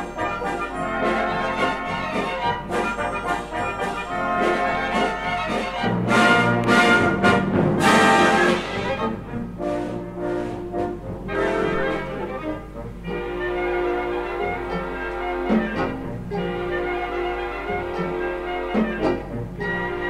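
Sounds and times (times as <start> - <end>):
orchestra playing with brass: 0.0 - 20.0.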